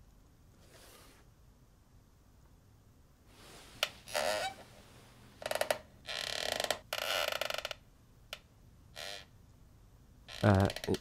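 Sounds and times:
ratchet-like creaking clicks: 10.3s - 11.0s.

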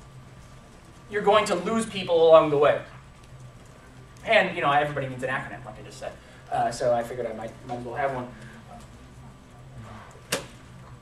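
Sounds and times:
sound system hum: 0.0s - 11.0s.

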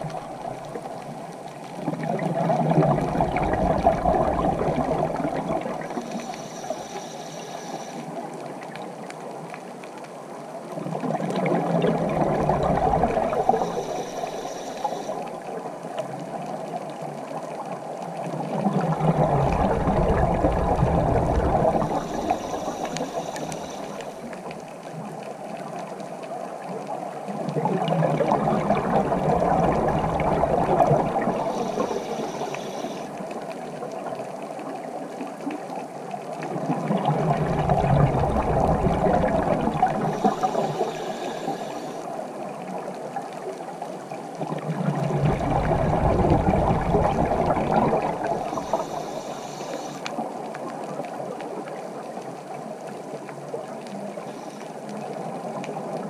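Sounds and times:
rumbling exhaled bubbles: 0.0s - 6.7s, 10.8s - 15.0s, 18.3s - 24.0s, 27.3s - 33.0s, 36.4s - 42.0s, 44.4s - 49.5s
regulator hiss on inhale: 4.4s - 8.3s, 12.6s - 15.5s, 20.3s - 24.4s, 30.8s - 33.2s, 39.1s - 42.4s, 47.0s - 50.3s, 54.0s - 55.0s.

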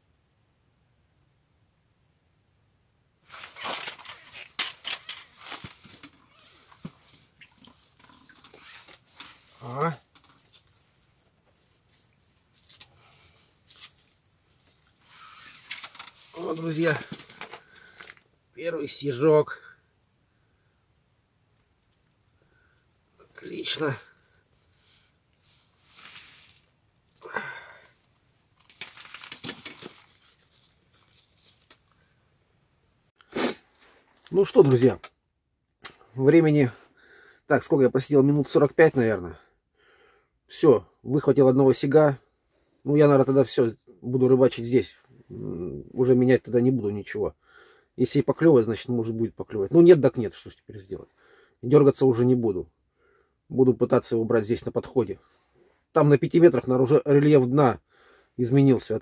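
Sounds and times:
handling noises: 3.2s - 7.4s, 8.0s - 18.3s, 28.6s - 31.9s
clothes and fishing line rustling: 3.2s - 18.3s, 21.7s - 32.4s, 33.5s - 35.0s
small clicks and scrapes: 3.3s - 13.0s, 13.6s - 16.4s.

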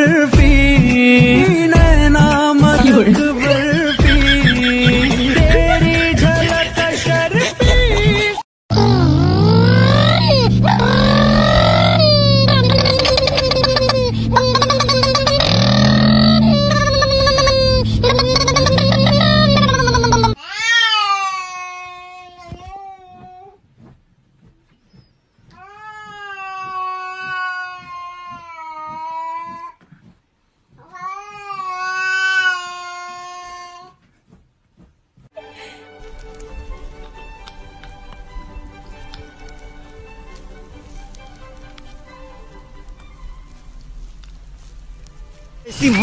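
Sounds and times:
puppy howling: 8.8s - 20.3s.

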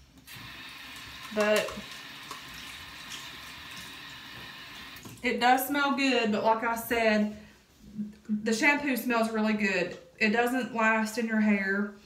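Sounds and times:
water running from tap: 0.0s - 5.4s.

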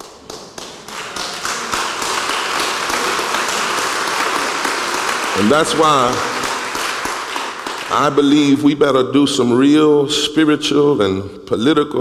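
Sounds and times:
congregation applauding: 0.0s - 8.8s.

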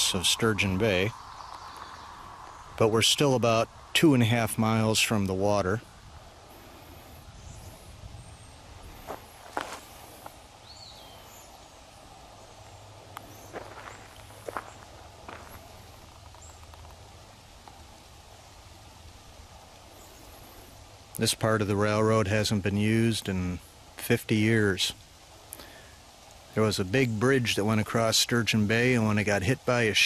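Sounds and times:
faint bird chirps: 0.0s - 5.2s, 5.9s - 9.2s, 9.8s - 16.8s.

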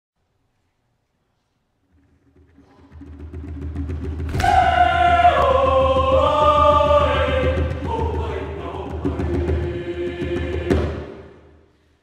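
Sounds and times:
hand drum roll: 1.9s - 11.2s
choir singing a held chord: 4.3s - 11.6s.

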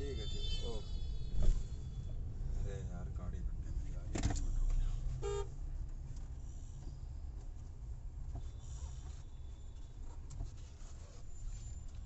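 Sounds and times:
vehicle horn toot: 0.0s - 2.0s, 5.2s - 5.5s
car engine rumble and road noise: 0.0s - 12.0s.

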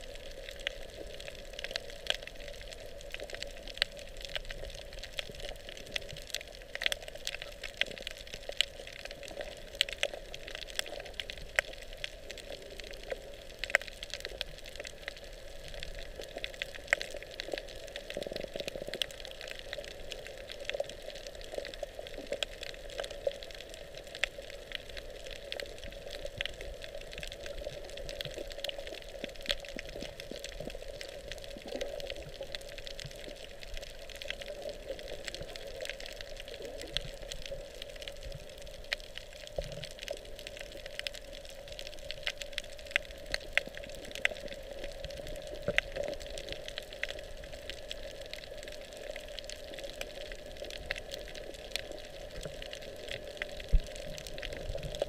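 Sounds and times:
small underwater clicks and crackles: 0.0s - 55.0s
underwater rush of water: 0.0s - 55.0s.

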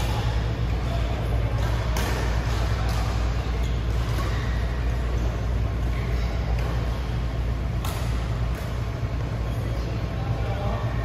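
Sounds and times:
ventilation hum and hiss: 0.0s - 11.0s.

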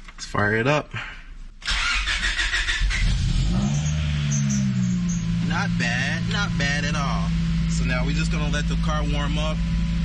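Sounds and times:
car engine starting and idling: 1.6s - 10.0s.

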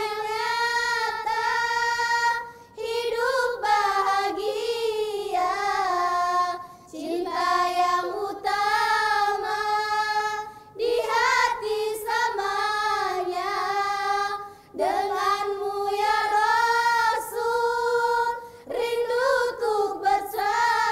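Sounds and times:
girls singing in unison: 0.0s - 20.9s.

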